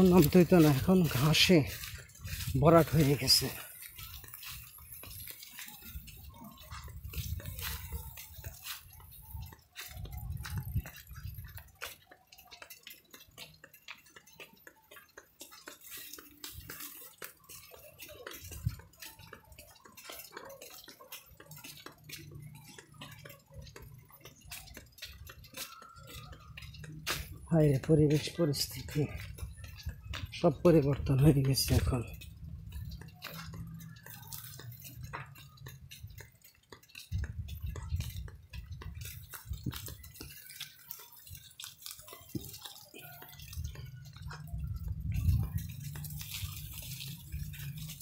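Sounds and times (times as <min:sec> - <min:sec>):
small clicks and rattles: 0:00.0 - 0:48.0
wind buffeting microphone: 0:05.9 - 0:08.4, 0:09.0 - 0:11.6, 0:37.1 - 0:40.3, 0:44.5 - 0:47.6.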